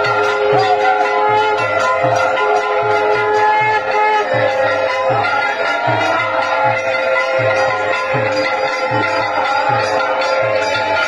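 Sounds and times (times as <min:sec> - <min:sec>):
long held instrumental tones: 0:00.0 - 0:11.0
steady low drum beat: 0:00.0 - 0:11.0.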